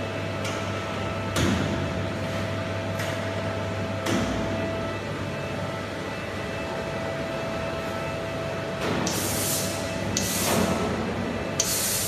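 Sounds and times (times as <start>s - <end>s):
sandblasting cabinet humming: 1.9s - 12.0s.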